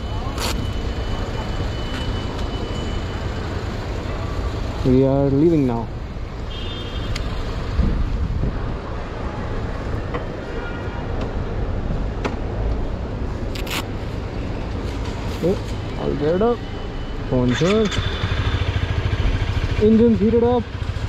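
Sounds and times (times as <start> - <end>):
curbside traffic: 0.0 - 21.0
vehicle engines idling: 11.4 - 21.0.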